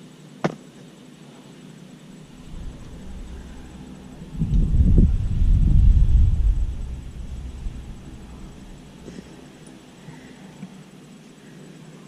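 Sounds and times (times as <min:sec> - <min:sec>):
wind buffeting microphone: 0:02.1 - 0:09.7.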